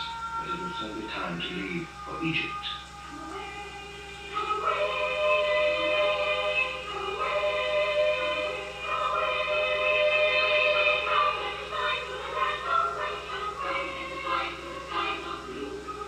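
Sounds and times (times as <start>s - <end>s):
boys' choir singing held notes: 3.1s - 16.0s.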